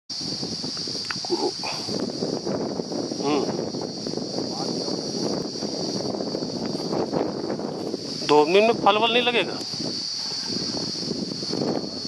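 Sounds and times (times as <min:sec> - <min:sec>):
insects droning: 0:00.1 - 0:12.0.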